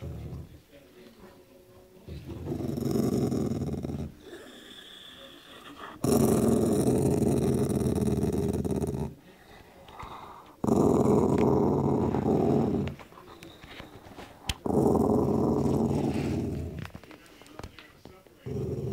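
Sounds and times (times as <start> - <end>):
dog growling: 0.0 - 0.6, 2.1 - 9.2, 10.0 - 13.2, 14.4 - 17.0, 18.4 - 18.9.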